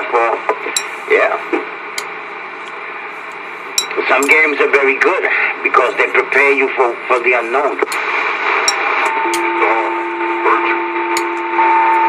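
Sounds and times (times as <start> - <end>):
radio static hiss: 0.0 - 11.7
sharp radio clicks: 7.8 - 8.1
steady two-tone whistle: 9.2 - 12.0.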